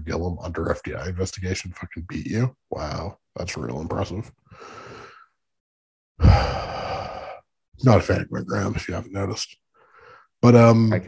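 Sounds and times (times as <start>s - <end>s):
man speaking: 0.0s - 4.3s, 7.8s - 9.6s, 10.4s - 11.0s
man sighing: 6.2s - 7.4s.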